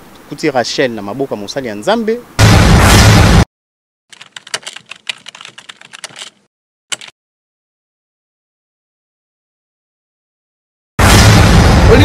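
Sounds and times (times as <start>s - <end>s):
keyboard key clicks: 4.1s - 7.1s.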